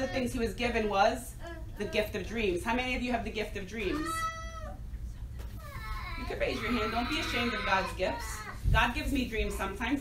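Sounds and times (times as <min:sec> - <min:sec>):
child squealing: 0:04.0 - 0:04.8, 0:05.6 - 0:08.6.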